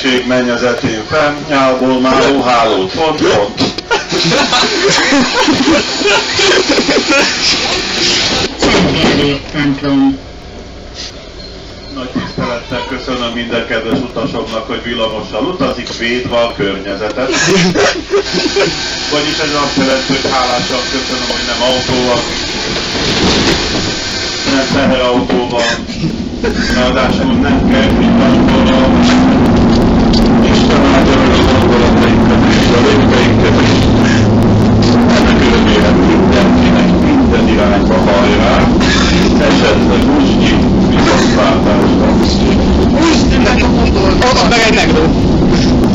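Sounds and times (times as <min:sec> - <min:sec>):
man talking: 0:00.0 - 0:07.9, 0:08.6 - 0:10.2, 0:11.9 - 0:22.4, 0:24.4 - 0:45.9
tram running: 0:00.0 - 0:45.9.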